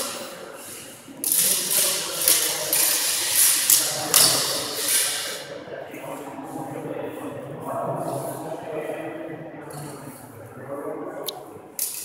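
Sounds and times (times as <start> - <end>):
swords clashing: 1.2 - 5.4.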